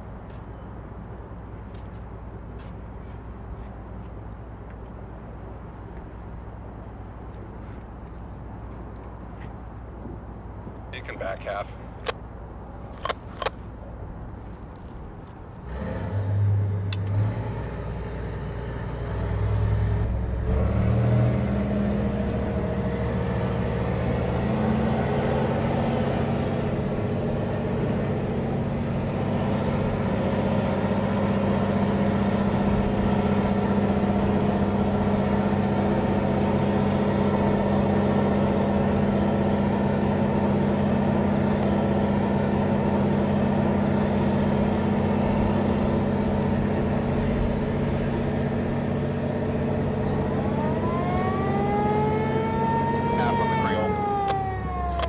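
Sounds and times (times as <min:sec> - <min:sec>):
boat diesel engines droning: 0:00.0 - 0:55.0.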